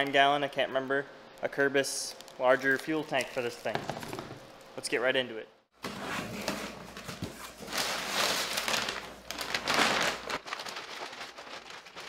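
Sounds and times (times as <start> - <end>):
plastic bag rustling and crinkling: 6.9 - 12.0.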